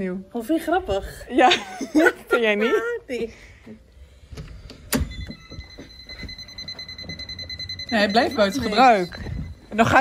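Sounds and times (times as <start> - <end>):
alarm high-pitched beep: 5.2 - 10.0.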